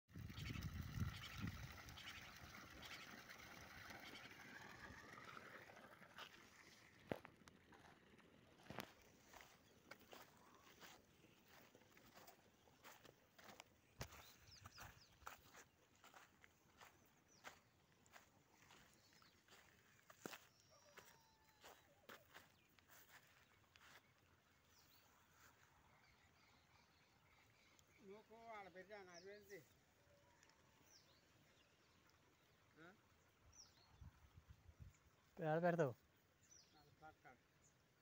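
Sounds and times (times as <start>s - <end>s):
wind rumble on microphone: 0.1s - 1.9s
footsteps on soil and grass: 6.2s - 8.0s, 8.6s - 24.2s.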